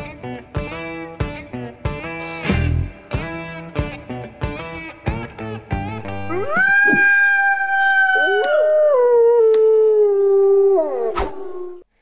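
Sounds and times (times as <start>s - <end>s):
wolves howling: 6.2s - 11.8s.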